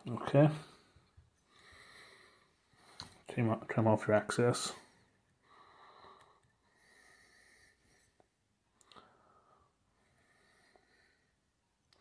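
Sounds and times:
faint slow breathing: 0.5 - 3.3, 4.7 - 12.0.

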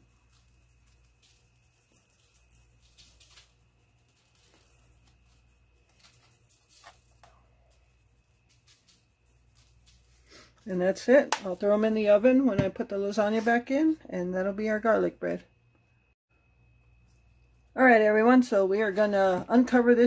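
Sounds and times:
low steady hum: 0.0 - 20.0.

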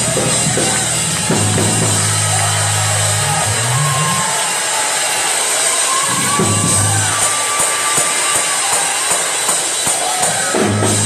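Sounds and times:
drum kit steady beat: 0.0 - 4.2, 6.0 - 11.0
live church praise music: 0.0 - 11.0.

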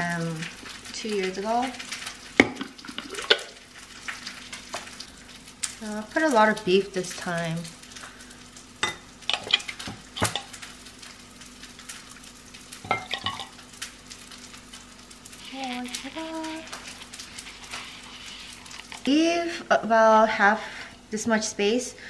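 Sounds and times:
liquid slopping: 15.9 - 19.2.

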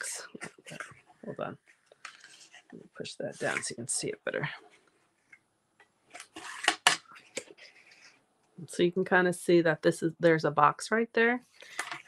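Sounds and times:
paper rustling: 0.2 - 3.8, 6.1 - 8.2.

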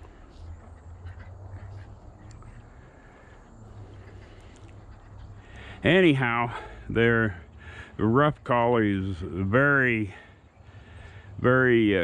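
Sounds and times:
distant ducks quacking: 0.0 - 12.0.

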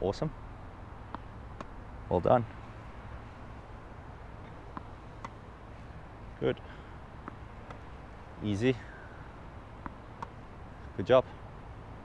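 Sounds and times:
racket hitting tennis ball: 1.0 - 2.6, 4.0 - 10.9
tennis ball bouncing on court: 1.0 - 3.2, 3.8 - 10.9.

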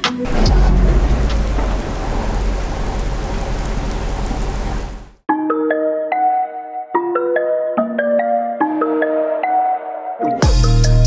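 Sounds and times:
deep thunder rumble: 0.3 - 5.2
heavy rain: 0.3 - 5.2.

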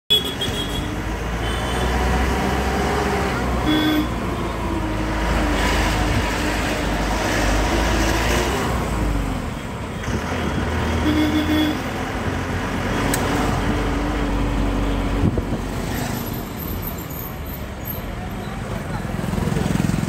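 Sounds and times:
bus horn toot: 0.1 - 2.0, 3.6 - 4.2, 10.1 - 12.0
road noise: 0.1 - 20.0
bus engine running: 0.4 - 20.0.

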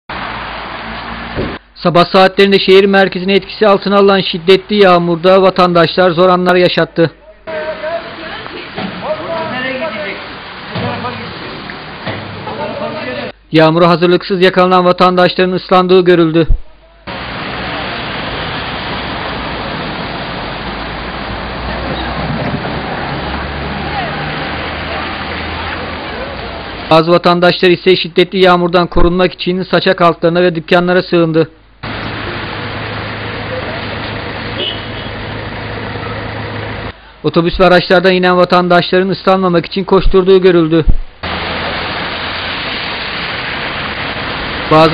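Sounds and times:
rain hissing on wet street: 0.1 - 1.6, 7.5 - 13.4, 17.1 - 27.7, 31.8 - 37.0, 41.1 - 44.9.

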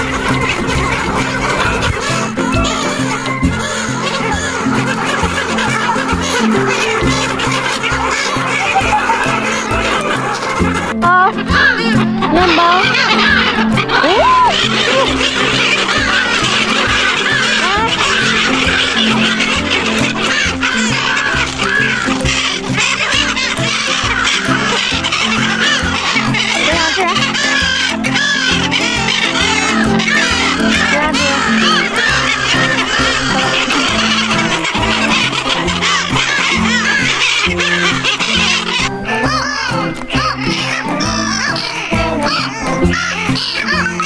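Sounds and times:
background music: 0.0 - 44.0
gulls calling: 0.0 - 44.0.

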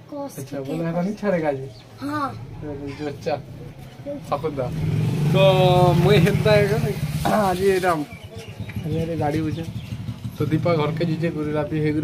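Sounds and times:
vehicle engine rumbling: 1.9 - 12.0
man talking: 2.6 - 9.8.

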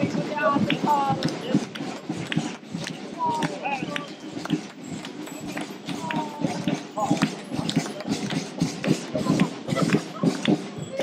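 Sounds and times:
people talking: 0.0 - 11.0
shoes clicking on road: 0.0 - 11.0.

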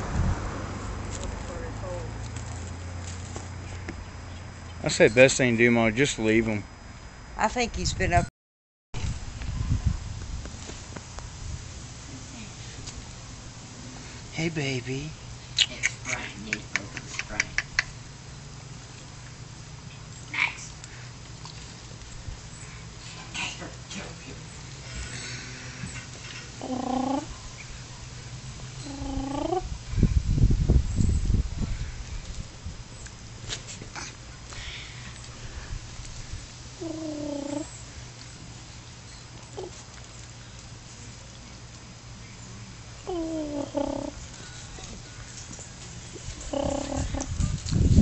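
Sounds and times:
raccoon high call: 25.9 - 27.4, 28.8 - 29.7, 36.8 - 37.8, 43.1 - 45.2, 46.4 - 47.4.

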